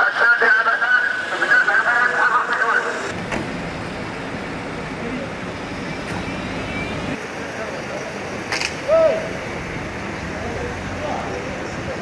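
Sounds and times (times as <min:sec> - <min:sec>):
cars driving past: 0:00.0 - 0:12.0.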